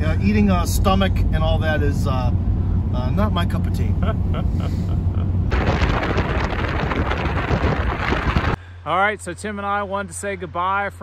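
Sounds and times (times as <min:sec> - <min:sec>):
road rumble in car cabin: 0:00.0 - 0:08.6
soft laughter: 0:04.0 - 0:05.4
wind buffeting microphone: 0:05.5 - 0:08.6.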